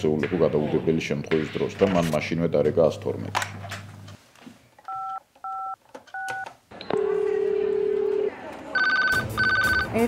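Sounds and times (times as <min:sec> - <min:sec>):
telephone keypad beeps: 0:04.9 - 0:08.2, 0:08.8 - 0:09.9
telephone line tone: 0:04.9 - 0:09.9.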